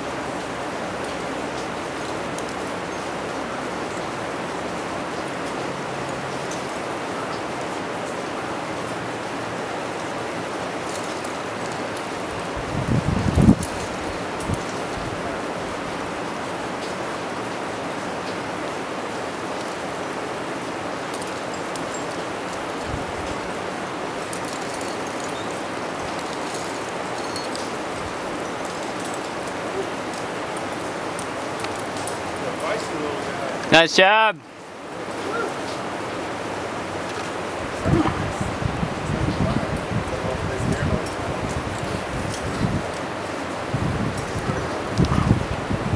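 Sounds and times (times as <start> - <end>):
rushing outdoor noise: 0.0 - 45.9.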